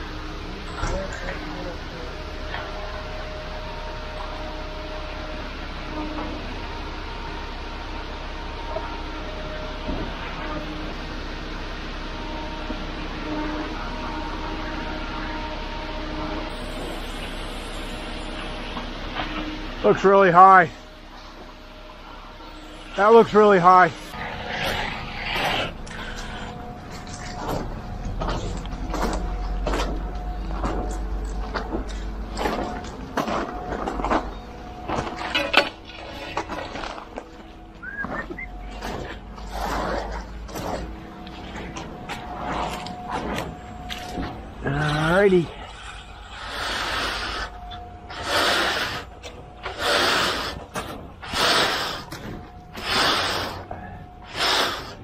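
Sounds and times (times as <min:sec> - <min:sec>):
low engine rumble: 0:00.0 - 0:55.0.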